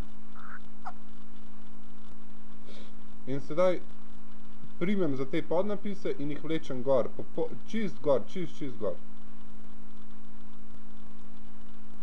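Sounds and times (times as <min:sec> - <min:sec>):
low electrical hum: 0:00.0 - 0:12.0
steady hiss: 0:00.0 - 0:12.0.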